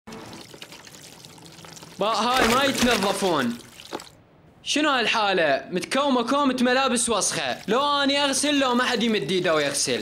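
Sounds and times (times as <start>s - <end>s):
clothes scrubbed in soapy water: 0.1s - 4.1s, 7.4s - 10.0s
water splashing and sloshing: 0.1s - 4.2s, 7.2s - 10.0s.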